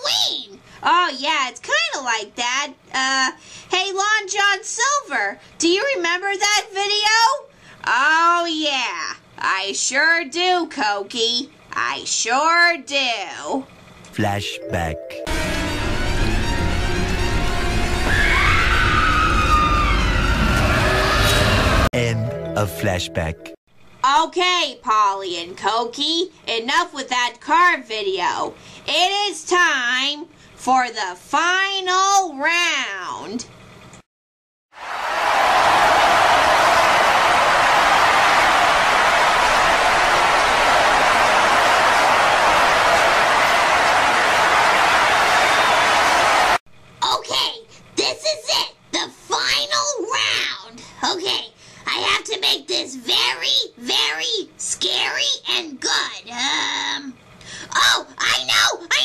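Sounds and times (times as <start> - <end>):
high wailing tone: 17.9 - 21.9.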